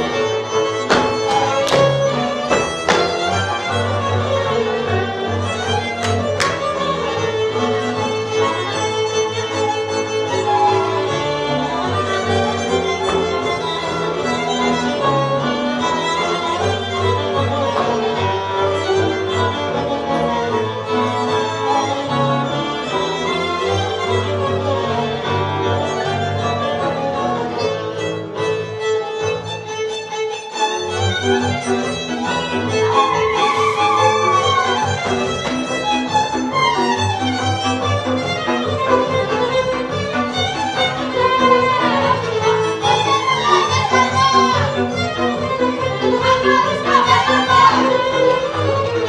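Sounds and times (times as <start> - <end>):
fiddles playing folk tune: 0.0 - 49.0.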